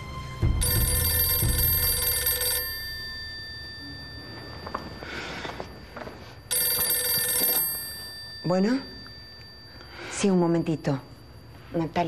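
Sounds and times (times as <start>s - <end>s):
desk telephone ringing: 0.6s - 12.0s.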